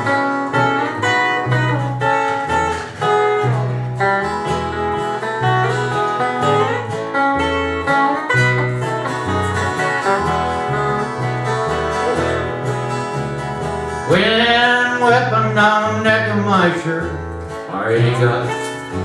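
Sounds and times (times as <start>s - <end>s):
electric bass: 0.0s - 19.0s
guitar lead lines: 0.0s - 19.0s
strummed acoustic guitar: 0.0s - 19.0s.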